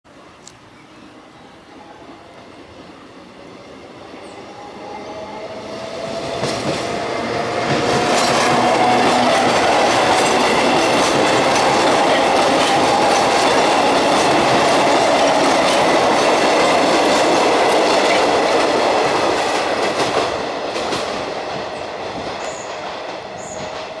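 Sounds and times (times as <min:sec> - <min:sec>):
train whine: 0:00.2 - 0:24.0
train wheels rumbling on rails: 0:02.4 - 0:24.0
clickety-clack over rail joints: 0:06.0 - 0:24.0.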